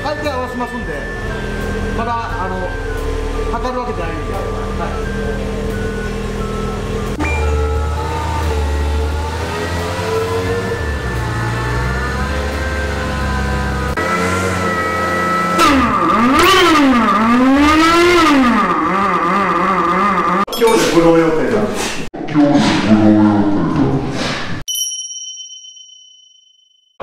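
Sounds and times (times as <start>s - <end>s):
car engine idling and revving: 0.0s - 20.5s.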